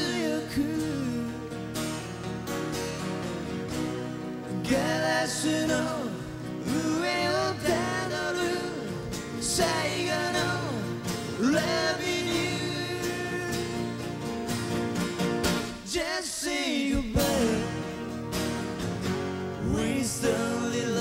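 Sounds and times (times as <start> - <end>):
man singing: 0.0 - 1.8, 4.5 - 14.2, 15.8 - 18.2, 19.6 - 21.0
acoustic guitars playing: 0.0 - 21.0.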